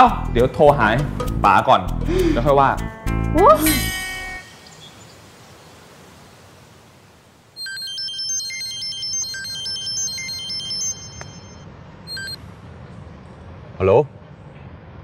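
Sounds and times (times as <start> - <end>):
phone ringtone beeping melody: 7.6 - 12.4.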